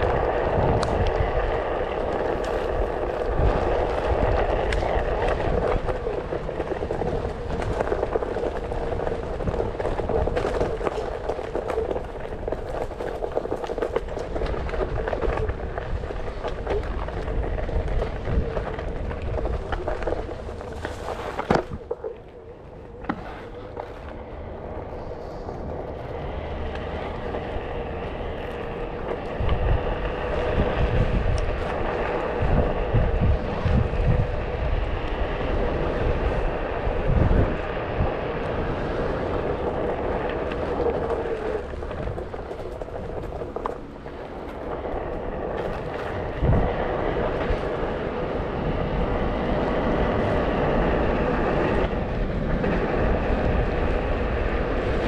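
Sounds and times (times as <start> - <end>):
tyre road noise: 0.0 - 55.0
wind rumble on microphone: 0.0 - 55.0.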